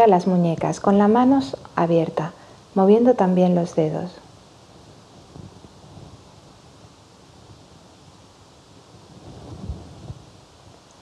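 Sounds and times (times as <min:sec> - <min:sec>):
clothing rustling on microphone: 0:04.9 - 0:06.5, 0:09.0 - 0:10.3.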